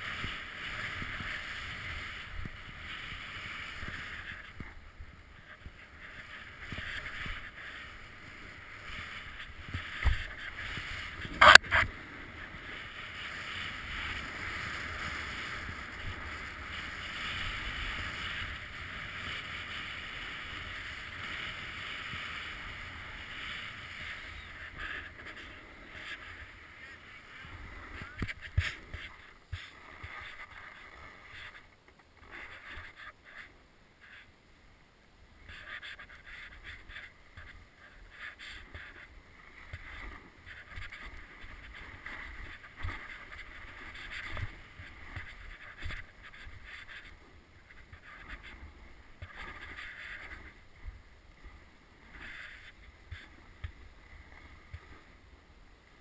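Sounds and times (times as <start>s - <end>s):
snow hissing under snowboard: 6.0s - 31.6s.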